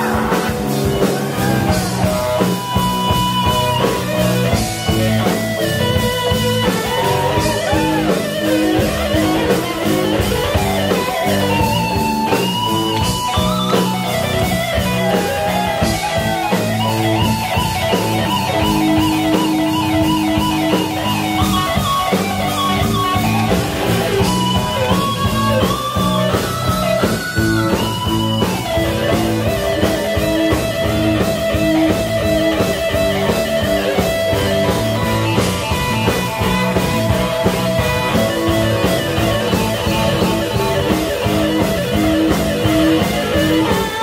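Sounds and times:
bass and drums: 0:00.0 - 0:44.0
electric guitar: 0:00.0 - 0:44.0
keyboard: 0:00.0 - 0:44.0.

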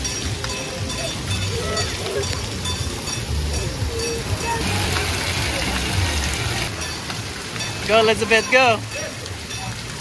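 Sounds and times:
water jets spraying: 0:00.0 - 0:10.0.

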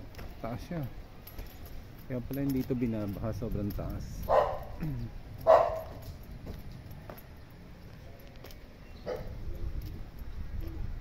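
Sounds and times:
dog barking: 0:04.3 - 0:04.8, 0:05.4 - 0:06.0, 0:09.0 - 0:09.4
dog yelping: 0:04.3 - 0:04.8, 0:05.5 - 0:06.0.

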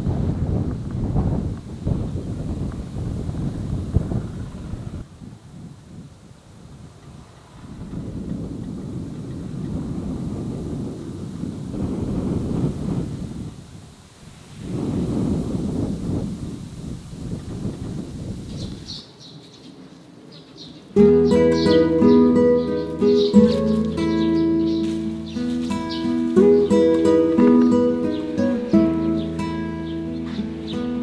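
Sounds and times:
wind buffeting microphone: 0:00.0 - 0:31.0
birds chirping: 0:18.4 - 0:31.0.

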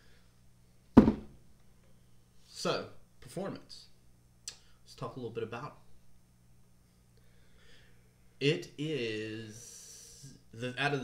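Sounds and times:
plastic tub thunk on table: 0:01.0 - 0:01.4.

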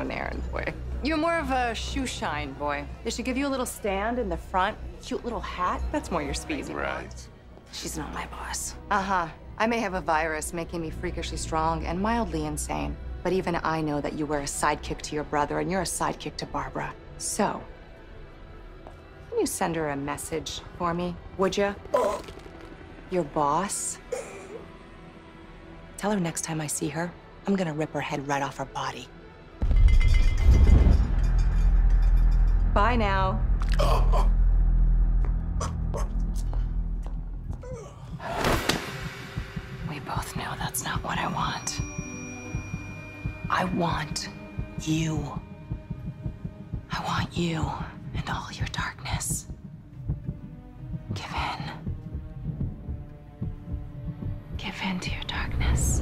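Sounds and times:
low pulsing music: 0:00.0 - 0:56.0
deep rumbling drone: 0:29.6 - 0:38.2, 0:42.6 - 0:56.0
woman whispering: 0:54.6 - 0:56.0.

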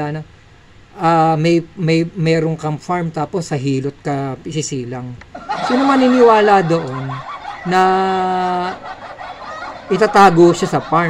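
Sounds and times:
man talking: 0:00.0 - 0:00.3, 0:01.0 - 0:08.8, 0:09.9 - 0:11.0.

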